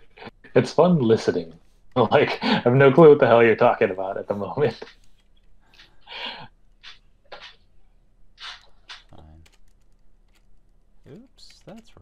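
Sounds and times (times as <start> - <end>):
person breathing quietly: 5.6 - 6.5.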